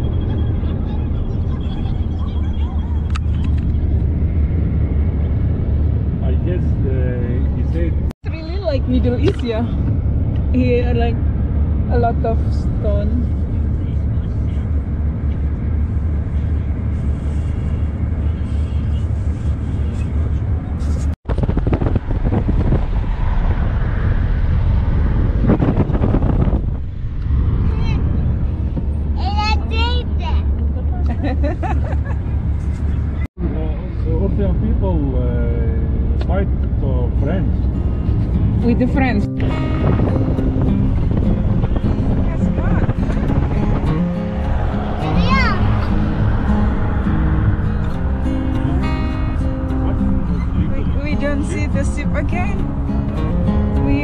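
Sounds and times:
car interior road rumble: 0.0 - 54.0
music playing: 37.7 - 54.0.

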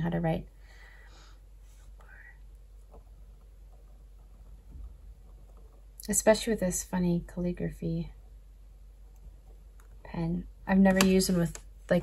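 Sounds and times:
soft breath: 0.5 - 2.5
pen nib scratching on paper: 2.8 - 6.0.

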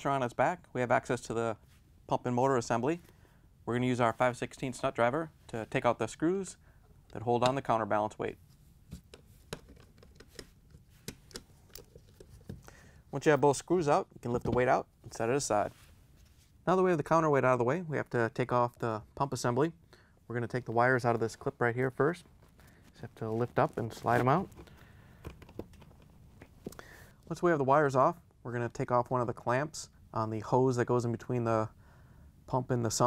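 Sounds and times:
wires clicking and rustling: 8.9 - 12.8, 22.3 - 26.8.

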